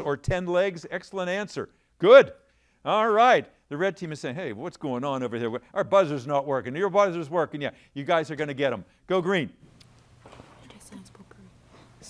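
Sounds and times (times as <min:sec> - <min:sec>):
people whispering: 0:10.6 - 0:11.6.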